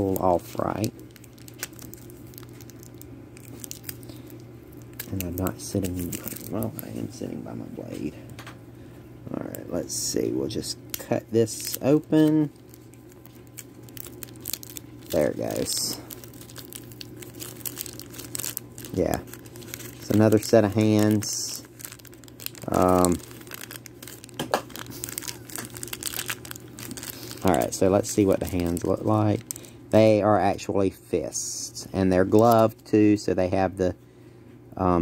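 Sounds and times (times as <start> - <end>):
plastic bag crinkling: 0.0 - 8.2, 9.4 - 30.6, 32.1 - 32.8
low steady hum: 0.0 - 35.0.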